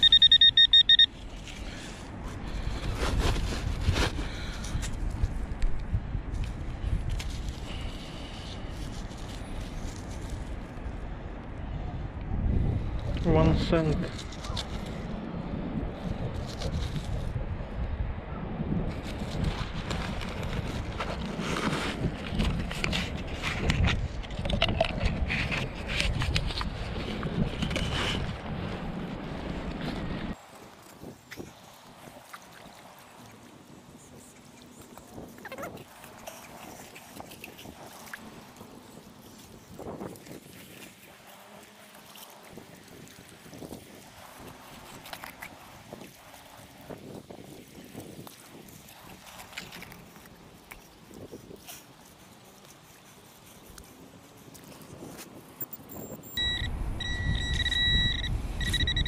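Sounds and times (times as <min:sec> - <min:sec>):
faint wind: 0:00.0 - 0:59.0
wind buffeting microphone: 0:02.2 - 0:32.3, 0:33.5 - 0:50.2, 0:50.8 - 0:59.0
shallow water: 0:18.9 - 0:58.8.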